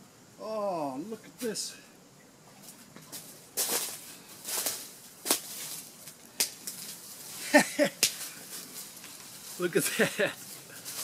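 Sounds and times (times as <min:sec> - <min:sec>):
rustling on dry leaves: 0:02.6 - 0:11.0.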